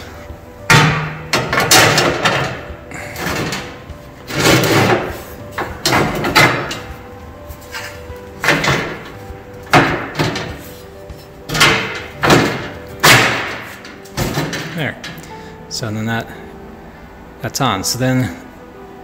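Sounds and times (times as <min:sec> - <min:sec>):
metal frame and flap clanking: 0:00.0 - 0:15.4.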